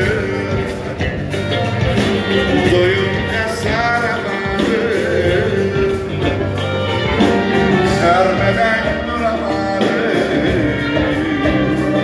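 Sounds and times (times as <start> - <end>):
person singing: 0.0 - 1.3, 2.1 - 12.0
drums keeping a steady beat: 0.0 - 12.0
live band music: 0.0 - 12.0.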